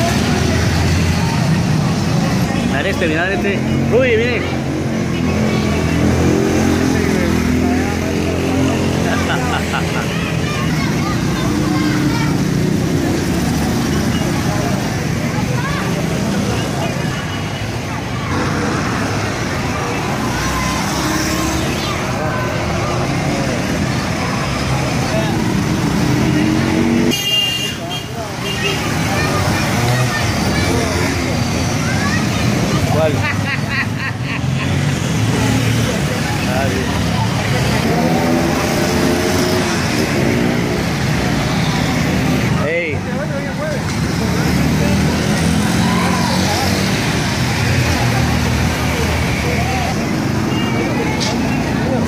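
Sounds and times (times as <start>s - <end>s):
crowd talking and calling out: 0.0s - 52.0s
motorcycle engines: 0.0s - 52.0s
quad bike engine: 0.0s - 52.0s.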